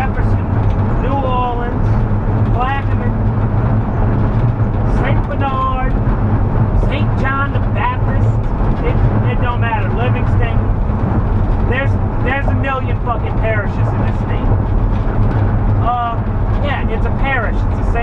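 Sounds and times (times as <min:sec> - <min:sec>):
man speaking: 0:00.0 - 0:01.9, 0:02.5 - 0:03.2, 0:04.9 - 0:06.0, 0:06.8 - 0:10.7, 0:11.7 - 0:14.5, 0:15.8 - 0:18.0
van engine and tyres droning: 0:00.0 - 0:18.0.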